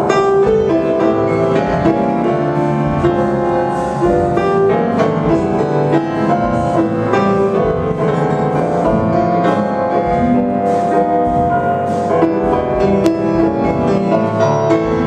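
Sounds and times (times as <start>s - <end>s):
grand piano melody: 0.0s - 15.0s
light drum kit: 0.0s - 15.0s
plucked double bass: 0.0s - 15.0s.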